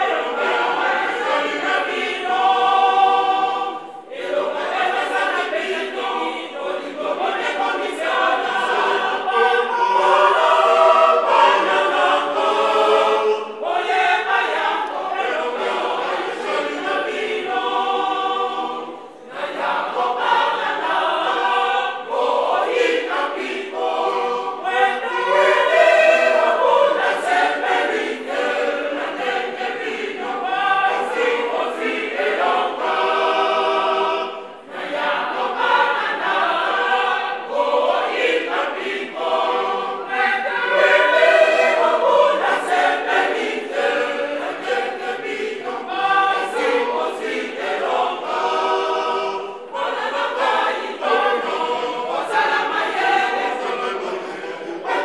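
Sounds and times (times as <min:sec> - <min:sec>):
church choir singing: 0:00.0 - 0:55.0.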